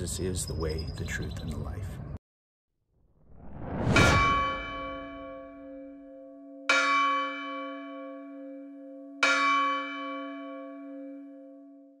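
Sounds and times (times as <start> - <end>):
church bell ringing: 4.2 - 12.0.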